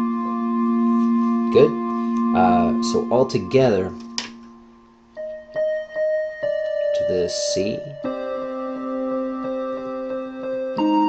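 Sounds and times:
synth keyboard chord and melody: 0:00.0 - 0:11.0.

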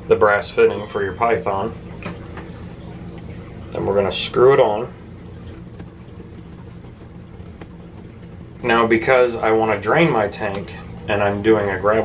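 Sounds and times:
low hum: 0:01.6 - 0:11.2.

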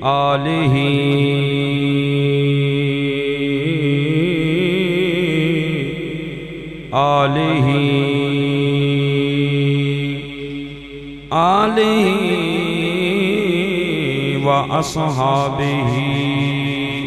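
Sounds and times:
man chanting into a microphone: 0:00.0 - 0:17.0.

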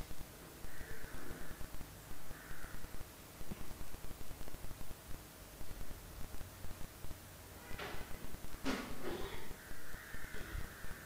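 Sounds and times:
irregular low crackle: 0:00.0 - 0:11.0.

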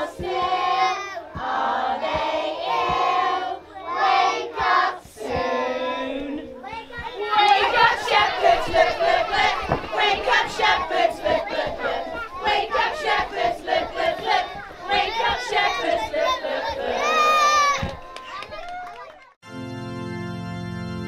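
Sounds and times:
children shouting: 0:05.9 - 0:19.3.

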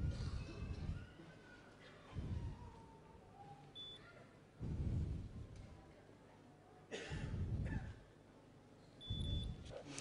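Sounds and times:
glucose meter beep: 0:09.0 - 0:09.6.

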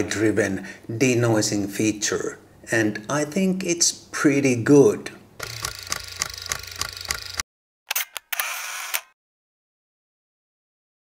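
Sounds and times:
mechanical camera clicks: 0:05.4 - 0:09.2
sharp shutter clicks: 0:05.4 - 0:09.2.

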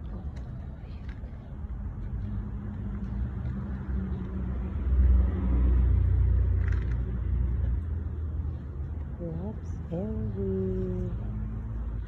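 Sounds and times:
motor vehicle rumble: 0:00.0 - 0:12.0.

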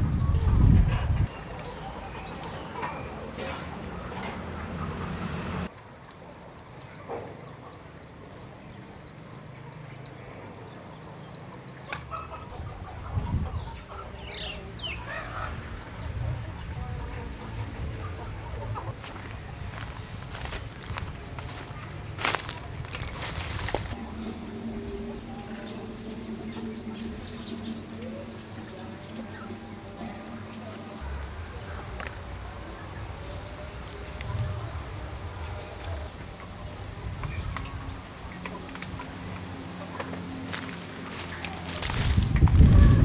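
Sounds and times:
chickens clucking: 0:11.9 - 0:16.2, 0:17.0 - 0:30.9.

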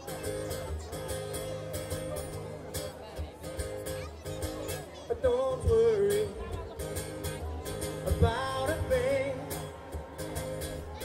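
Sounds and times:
acoustic guitar strumming: 0:00.0 - 0:11.0
man singing through a pa: 0:05.0 - 0:06.6, 0:08.0 - 0:09.8.

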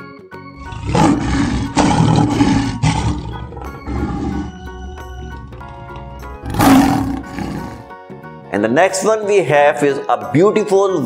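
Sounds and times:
background music: 0:00.0 - 0:11.0
lion roaring: 0:00.6 - 0:07.9.

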